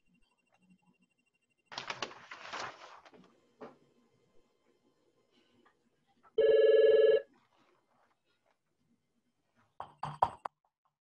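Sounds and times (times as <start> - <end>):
telephone ringing: 6.4 - 7.3.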